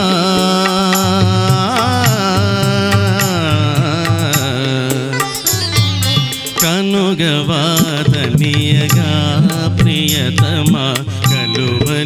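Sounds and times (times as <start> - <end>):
instrumental backing: 0.0 - 12.0
man singing into a microphone: 0.0 - 12.0
steady percussion: 0.0 - 12.0.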